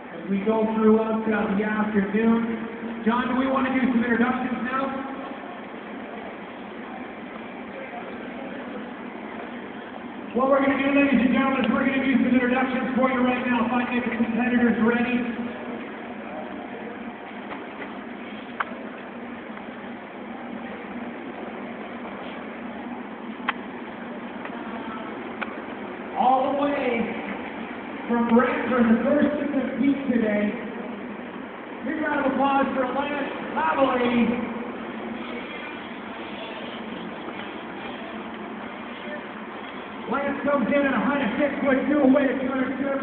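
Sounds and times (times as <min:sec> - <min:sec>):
street ambience hiss: 0:00.0 - 0:43.0.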